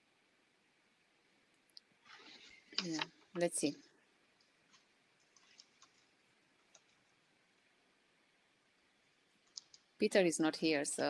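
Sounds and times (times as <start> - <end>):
faint clicks: 4.4 - 7.1, 9.4 - 10.0.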